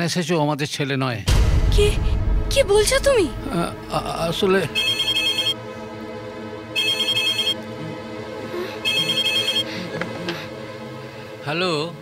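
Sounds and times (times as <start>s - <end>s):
telephone ringing: 4.8s - 5.6s, 6.8s - 7.6s, 8.8s - 9.7s.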